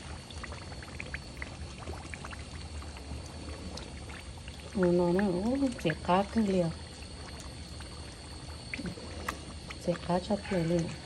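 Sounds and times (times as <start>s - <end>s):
small crackles and pops: 0.0s - 11.0s
chili flakes sizzling in oil: 3.0s - 11.0s.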